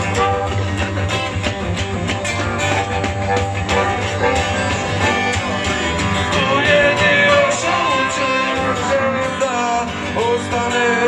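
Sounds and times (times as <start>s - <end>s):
electric guitar: 0.0s - 11.0s
harmonica lead with bending notes: 0.0s - 11.0s
strummed acoustic guitar: 0.0s - 11.0s.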